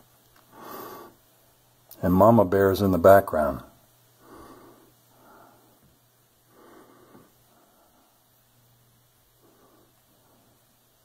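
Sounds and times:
faint breaths: 0.4 - 1.5, 4.0 - 11.0.

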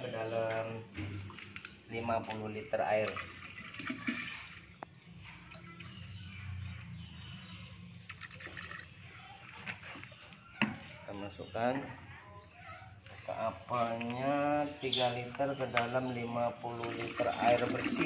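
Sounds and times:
liquid pouring into water: 2.9 - 4.8, 8.0 - 9.1, 16.7 - 18.0
liquid splashing into water: 3.0 - 4.8, 8.0 - 9.2, 16.7 - 18.0.

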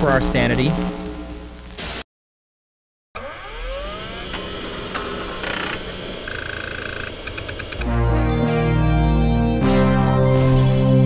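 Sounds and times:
static-like noise: 0.0 - 2.1, 4.5 - 7.8.

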